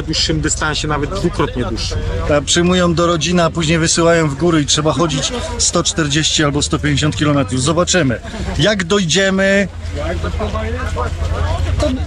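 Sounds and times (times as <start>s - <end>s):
people talking: 0.0s - 12.0s
steady low rumble: 0.0s - 12.0s.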